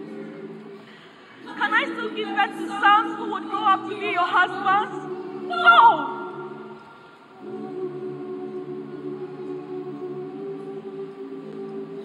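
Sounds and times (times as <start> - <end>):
choir holding a chord: 0.0 - 12.0
woman singing a lament: 1.5 - 6.4.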